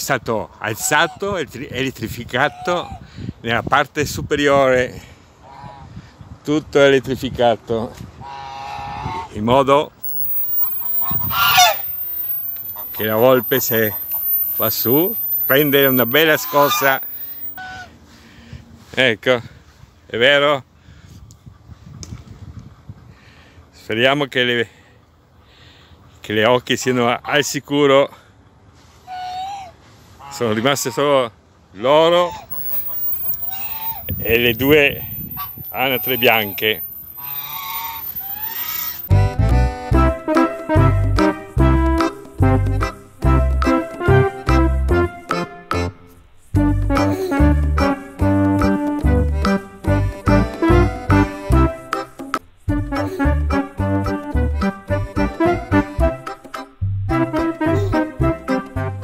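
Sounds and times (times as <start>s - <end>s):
goose honking: 10.0s - 17.9s, 32.2s - 39.1s.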